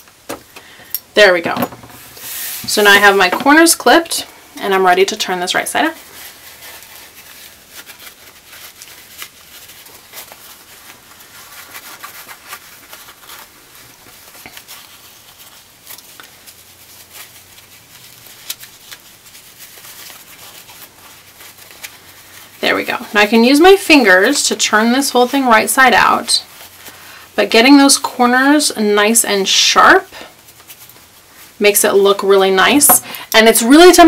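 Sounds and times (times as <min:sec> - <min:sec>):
cotton fabric rustling: 0:00.1 - 0:34.0.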